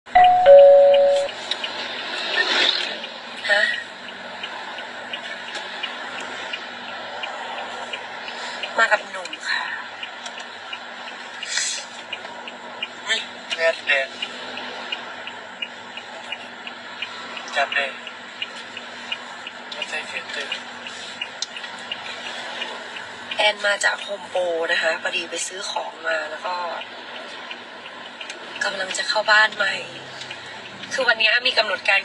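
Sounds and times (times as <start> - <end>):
two-note doorbell chime: 0.1 - 1.3
car cabin hum: 0.1 - 1.4
light regular ticking: 3.0 - 32.0.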